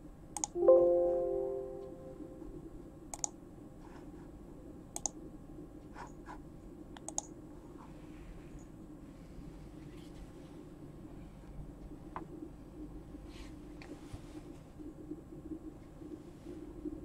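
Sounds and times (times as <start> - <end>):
computer mouse clicking: 0.4 - 0.6, 3.1 - 3.4, 4.9 - 5.2, 7.0 - 7.3
electronic chime: 0.6 - 2.5.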